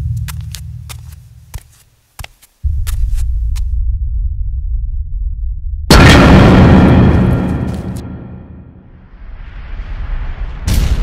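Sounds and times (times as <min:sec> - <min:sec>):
deep rumble: 0:02.6 - 0:11.0
loud boom: 0:05.8 - 0:11.0.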